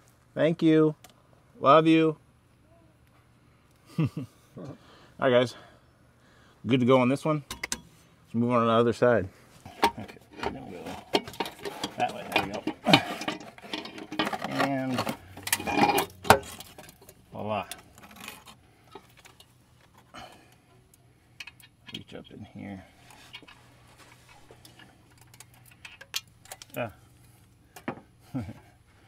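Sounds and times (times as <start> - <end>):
metal clinks and knocks: 9.8 - 20.1
people talking: 12.0 - 12.7.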